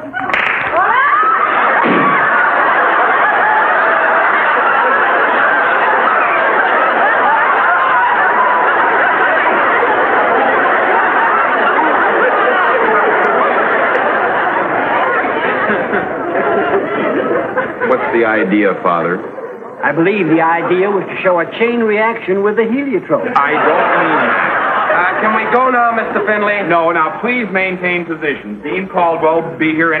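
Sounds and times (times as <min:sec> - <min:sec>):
studio audience laughter: 0:00.2 - 0:27.5.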